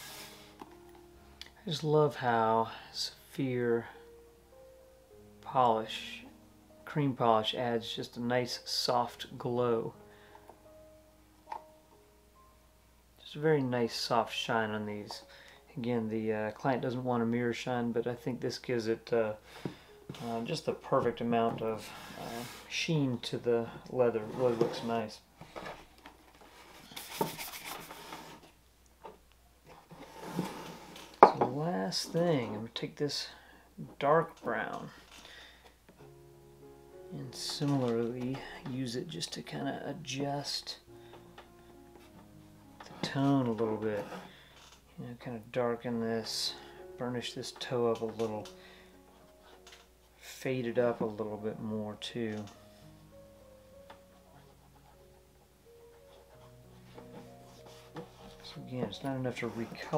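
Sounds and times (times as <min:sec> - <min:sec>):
faint background music: 0:00.0 - 0:59.9
brush stroking leather shoe: 0:54.0 - 0:59.9
rubbing: 0:54.0 - 0:59.9
man speaking: 0:58.5 - 0:59.9.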